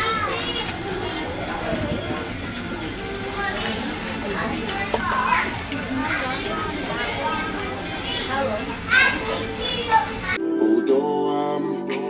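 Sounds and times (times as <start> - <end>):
diners' voices: 0.0 - 10.4
background music: 0.0 - 12.0
high child-like voice: 5.0 - 5.7.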